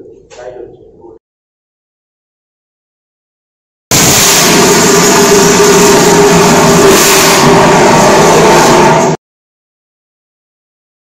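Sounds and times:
fire extinguisher hissing: 3.9s - 9.2s.

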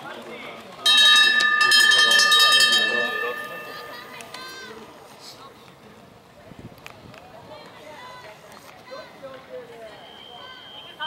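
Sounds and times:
hand bell ringing rapidly: 0.9s - 4.1s.

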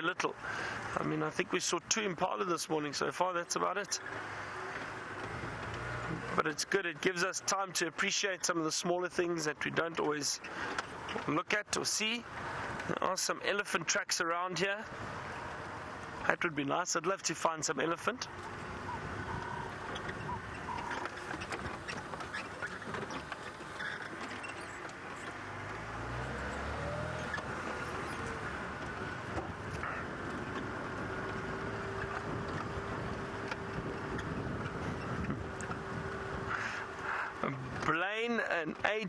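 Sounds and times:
road noise: 0.0s - 39.0s
vehicle engine running: 17.4s - 38.6s.

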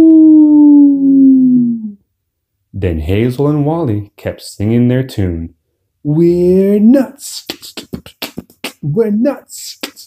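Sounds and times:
person doing mock howl: 0.0s - 2.0s.

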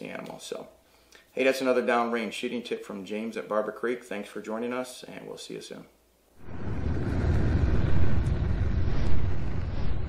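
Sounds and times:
deep low rumble: 6.4s - 10.0s.

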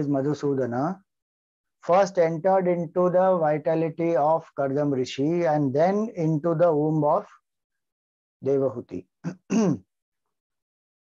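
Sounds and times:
man clearing his throat: 9.3s - 9.9s.

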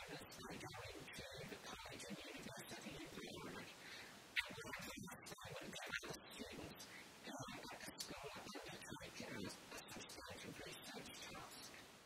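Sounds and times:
faint low speech: 0.0s - 3.8s, 4.4s - 11.8s.

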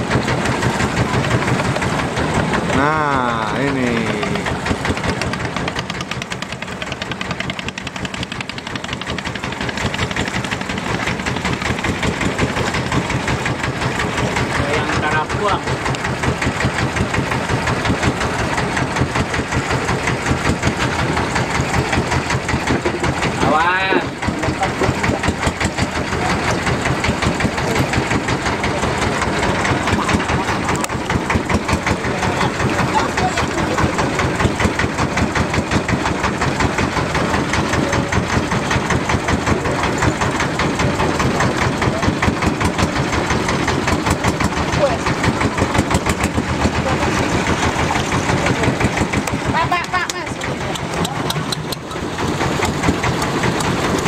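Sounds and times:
boat engine chugging: 0.0s - 54.0s.

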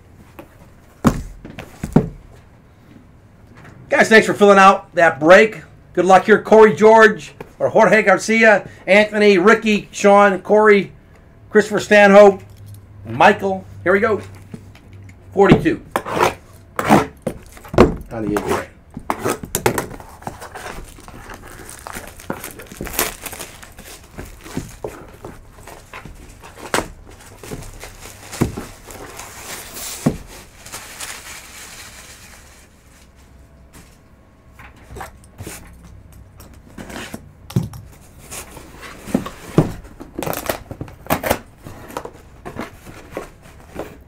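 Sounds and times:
cardboard box knocks and clicks: 1.0s - 2.2s
cardboard crinkling and tearing: 18.2s - 33.2s, 40.1s - 44.0s.

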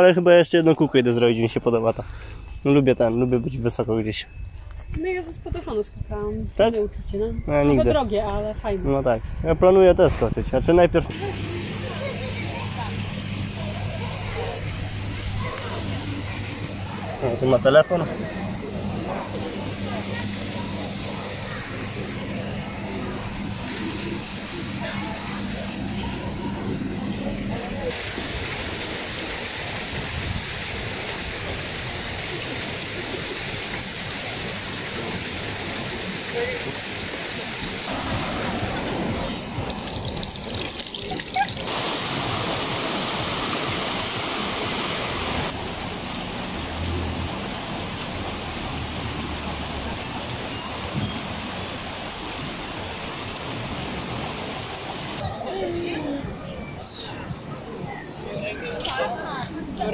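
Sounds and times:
people talking: 5.0s - 28.0s, 55.2s - 59.9s
water running from tap: 11.1s - 26.6s, 27.2s - 55.2s.

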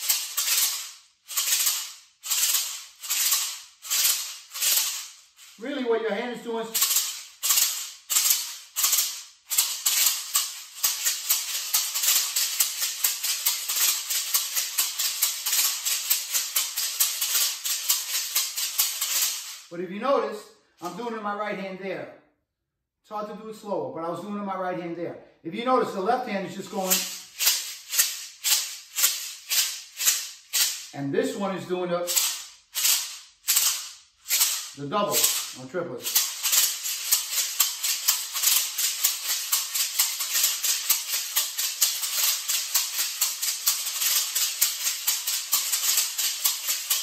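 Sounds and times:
maracas rattling: 0.0s - 19.8s, 26.4s - 47.0s.

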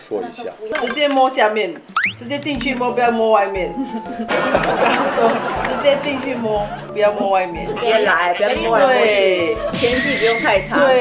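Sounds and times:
group of people laughing: 3.8s - 11.0s.

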